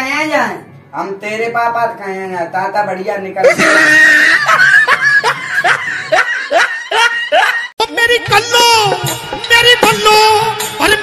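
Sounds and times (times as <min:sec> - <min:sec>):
person snickering: 0:03.5 - 0:07.7.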